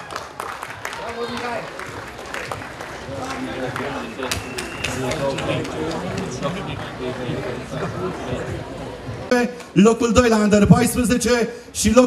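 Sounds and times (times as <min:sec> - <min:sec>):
hand claps: 0:00.0 - 0:06.3.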